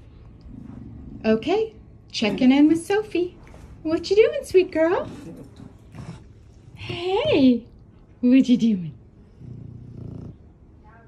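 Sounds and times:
dog grunting: 9.3s - 10.6s.

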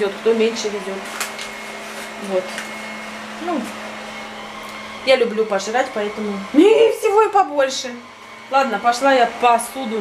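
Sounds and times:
electric motor whirring: 0.0s - 10.0s.

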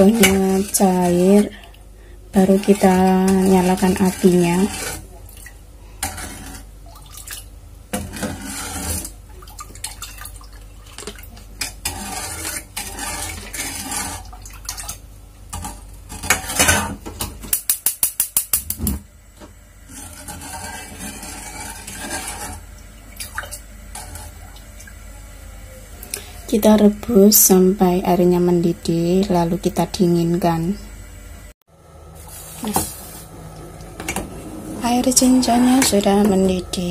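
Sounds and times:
plastic spoon scraping a saucepan: 2.4s - 5.1s, 6.0s - 6.7s, 8.0s - 9.2s, 11.6s - 14.3s, 19.9s - 22.7s, 34.8s - 36.9s.

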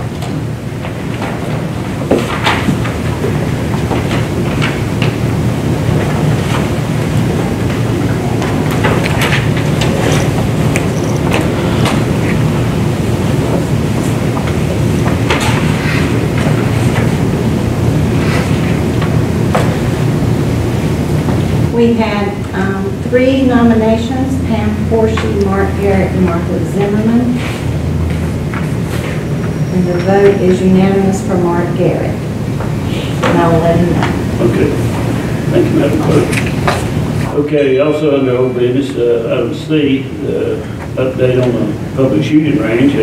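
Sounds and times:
people moving about: 0.0s - 37.5s
low room rumble: 0.0s - 43.0s.

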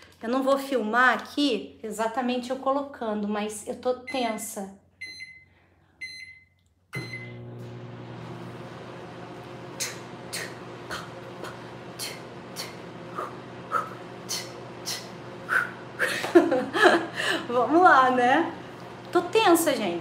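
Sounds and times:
microwave keypad beeps: 5.0s - 7.4s
microwave humming: 6.9s - 20.0s.

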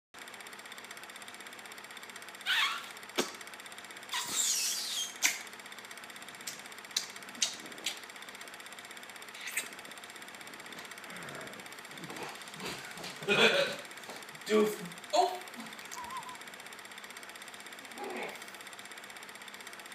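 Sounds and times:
film projector clattering: 0.2s - 19.9s.

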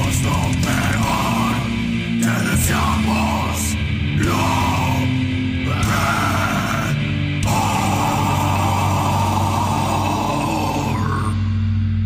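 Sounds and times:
heavy metal distorted guitars: 0.0s - 12.0s.

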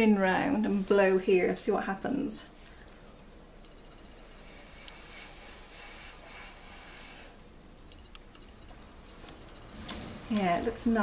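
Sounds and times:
soft breath hiss: 0.0s - 11.0s.

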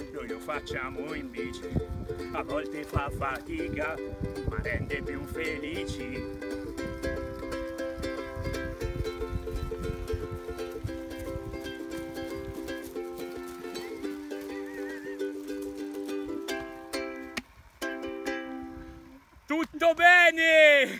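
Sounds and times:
ukulele strumming chords: 0.0s - 19.2s.

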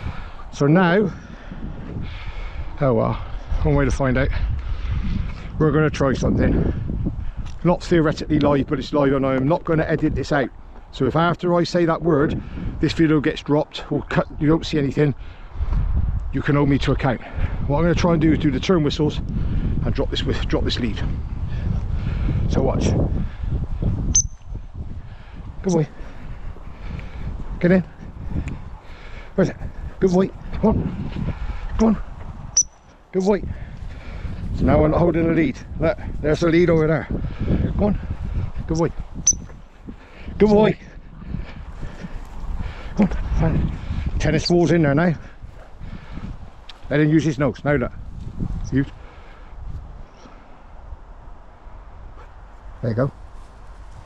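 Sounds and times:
wind rumble on microphone: 0.0s - 54.0s.

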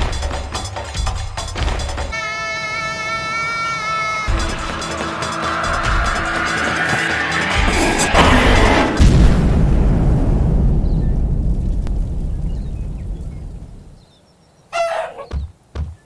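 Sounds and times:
squawk-like call: 2.1s - 7.4s, 14.7s - 15.5s
deep rumbling boom: 7.5s - 14.0s
dull thumps: 15.2s - 16.0s.

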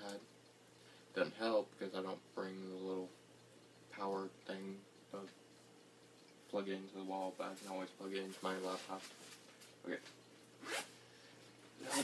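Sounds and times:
backpack zipper being pulled: 10.6s - 10.9s.

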